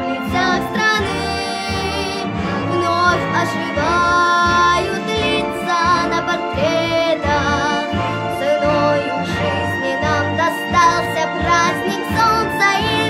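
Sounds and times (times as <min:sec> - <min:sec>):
girl singing with vibrato: 0:00.0 - 0:13.0
instrumental accompaniment: 0:00.0 - 0:13.0.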